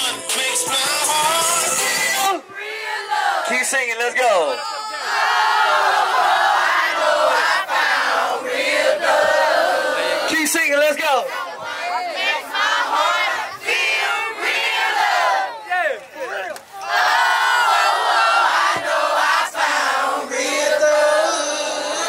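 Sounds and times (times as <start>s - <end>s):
crowd singing together: 0.0s - 3.6s, 5.0s - 10.5s, 11.1s - 15.7s, 16.7s - 22.0s.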